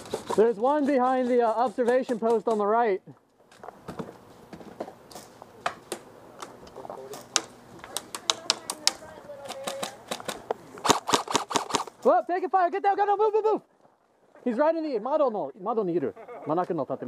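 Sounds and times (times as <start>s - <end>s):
airsoft guns firing: 7.4s - 12.0s.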